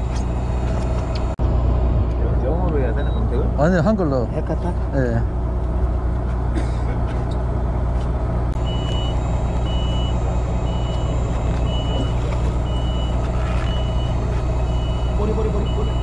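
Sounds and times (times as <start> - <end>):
boat engine humming: 0.0 - 16.0.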